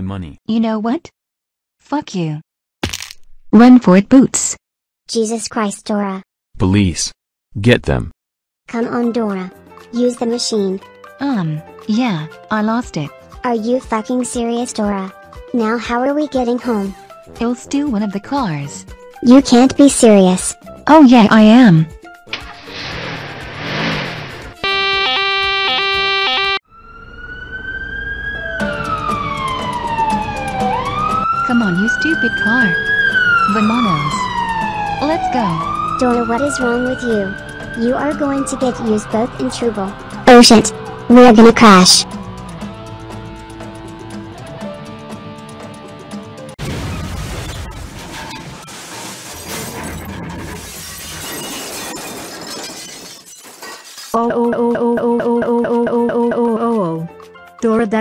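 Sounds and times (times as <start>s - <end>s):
car crash with shattering glass: 22.4s - 24.5s, 46.6s - 54.2s
car alarm tones: 24.6s - 41.7s
police siren wailing: 24.6s - 43.4s
background music with held notes: 28.0s - 46.6s, 54.3s - 58.0s.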